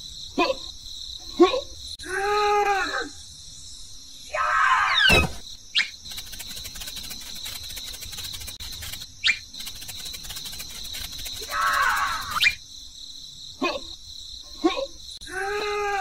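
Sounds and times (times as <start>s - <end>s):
insect-like chirring: 2.8s - 15.4s.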